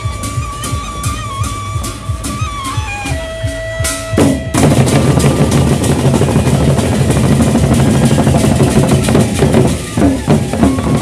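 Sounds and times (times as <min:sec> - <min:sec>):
barrel drums beaten fast: 0:00.0 - 0:11.0.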